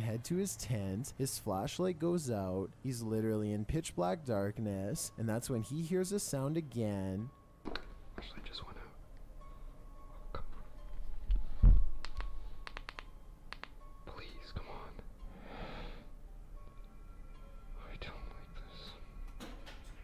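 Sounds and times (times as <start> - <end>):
quiet eerie music: 0.0 - 20.0
man whispering: 8.1 - 9.0, 14.0 - 15.1, 17.8 - 19.2
sharp clicks: 12.0 - 13.8.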